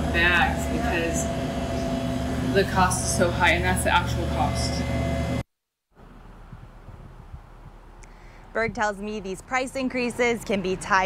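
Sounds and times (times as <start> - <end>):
indoor machinery hum: 0.0 - 5.4
low outdoor rumble: 6.0 - 11.0.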